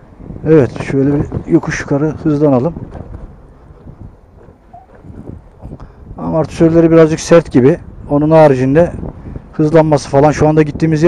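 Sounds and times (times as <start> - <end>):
scooter road rumble: 0.0 - 6.2
wind buffeting microphone: 0.0 - 11.0.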